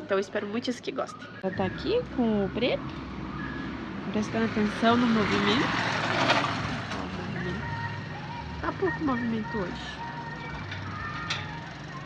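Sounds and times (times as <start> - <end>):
motorcycle passing on cobblestones: 1.6 - 12.0.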